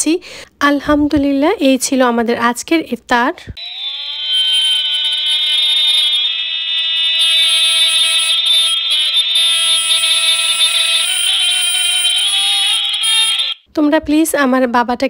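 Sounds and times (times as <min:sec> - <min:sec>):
loud steady held tone: 0:03.6 - 0:13.7.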